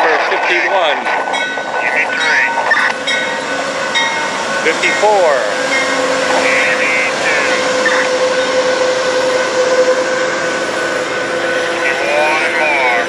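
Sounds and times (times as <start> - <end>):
train wheels and engine rumbling: 0.0 - 13.0
held tone: 1.3 - 10.1.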